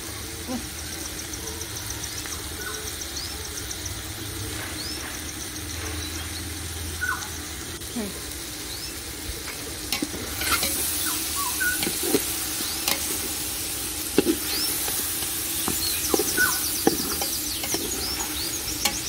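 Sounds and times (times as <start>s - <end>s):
food sizzling in a pot: 0.0s - 19.0s
metal ladle scraping a pot: 9.9s - 19.0s.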